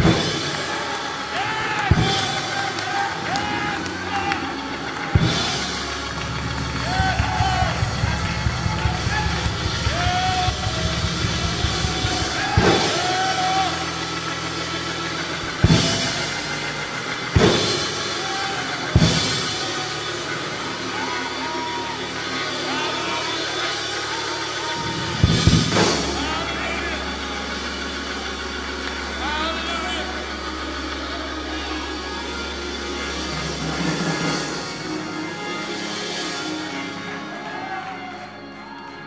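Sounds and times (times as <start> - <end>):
church band holding a low chord: 0.0 - 39.0
congregation voices: 0.0 - 39.0
drum hits: 4.9 - 14.5, 17.2 - 19.8.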